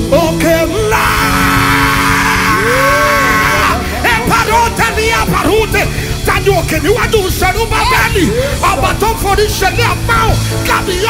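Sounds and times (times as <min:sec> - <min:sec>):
gospel band holding a chord: 0:00.0 - 0:11.0
man singing a long rough cry: 0:00.1 - 0:06.0.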